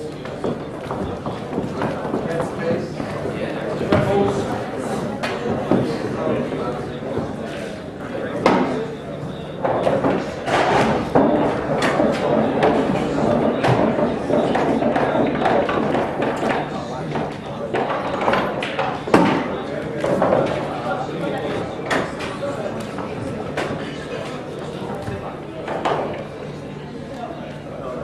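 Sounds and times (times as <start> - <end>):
background chatter in a hall: 0.0 - 28.0.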